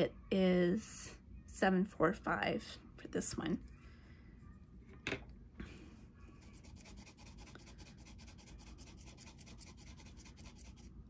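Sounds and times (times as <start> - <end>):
pencil scribbling on paper: 6.4 - 10.9.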